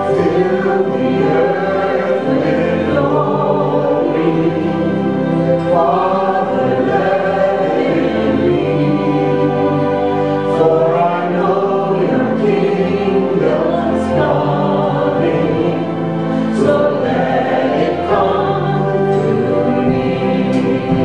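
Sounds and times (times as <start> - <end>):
keyboard: 0.0 - 21.0
women singing together: 0.0 - 21.0.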